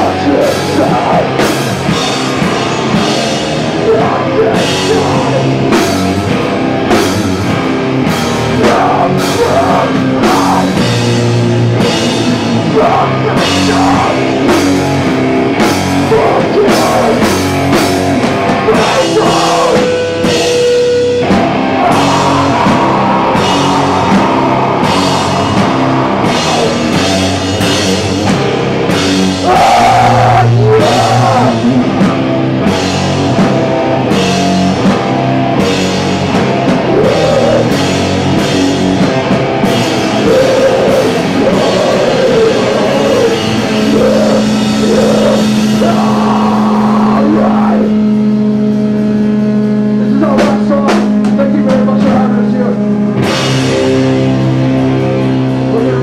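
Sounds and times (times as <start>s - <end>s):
bass guitar: 0.0s - 56.0s
distorted electric guitar: 0.0s - 56.0s
pounding drum kit: 0.0s - 56.0s.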